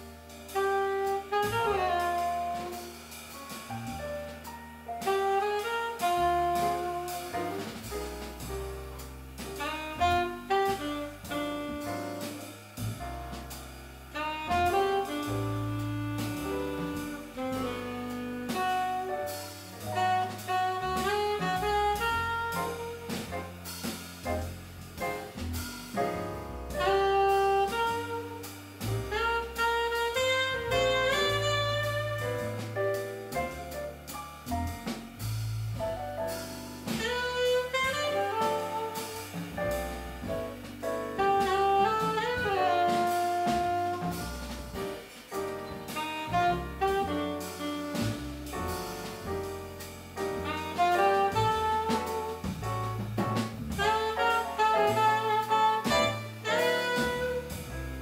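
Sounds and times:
double bass: 0.0 - 58.0
drum kit: 0.0 - 58.0
piano: 0.0 - 58.0
saxophone melody: 0.5 - 3.0, 5.0 - 7.7, 9.6 - 12.4, 14.1 - 23.6, 26.7 - 33.7, 37.0 - 52.7, 53.7 - 58.0.

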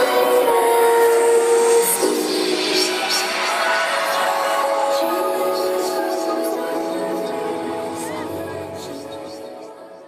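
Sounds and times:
live electronic music: 0.0 - 10.0.

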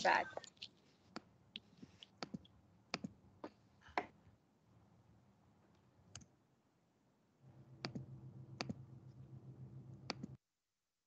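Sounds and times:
low steady hum: 2.4 - 10.4
computer mouse clicks: 7.8 - 8.8, 10.0 - 10.4.

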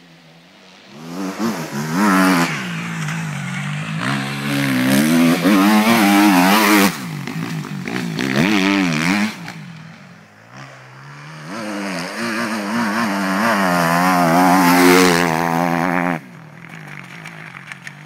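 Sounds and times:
motocross engine revving: 1.0 - 17.0.

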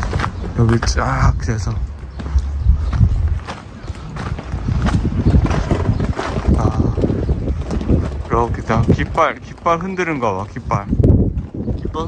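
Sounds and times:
footsteps on dirt: 0.0 - 12.0
wind buffeting microphone: 0.0 - 12.0.

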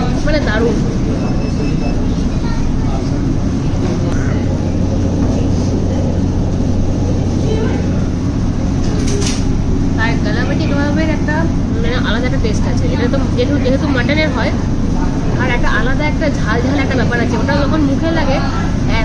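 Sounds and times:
low rumble with hum: 0.0 - 19.0.

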